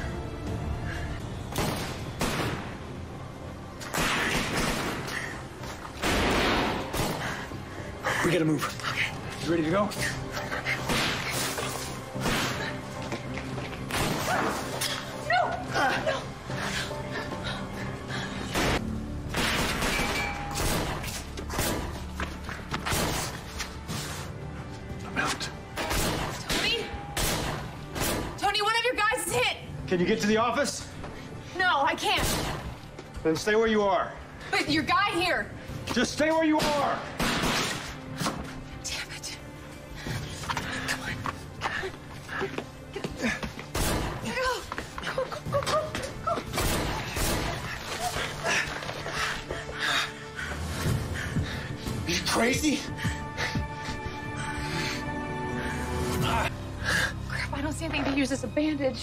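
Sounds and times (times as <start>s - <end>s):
tense background music: 0.0s - 59.0s
handgun shots: 36.6s - 37.9s.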